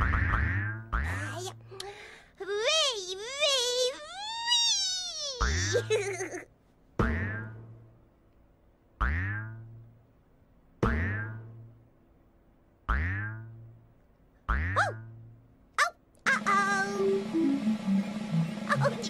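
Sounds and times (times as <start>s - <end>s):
cartoon boing sound effects: 0.0s - 1.2s, 7.0s - 7.6s, 9.0s - 9.7s, 10.8s - 11.6s, 12.9s - 13.6s, 14.5s - 15.2s
music: 16.4s - 19.0s.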